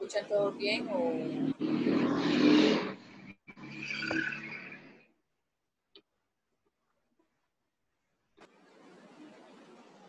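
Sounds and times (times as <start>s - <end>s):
loud rushing noise: 0.9s - 4.8s.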